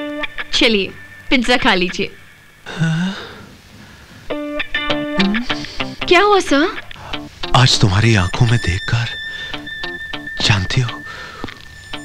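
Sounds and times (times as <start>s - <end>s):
plucked guitar melody: 4.3s - 12.0s.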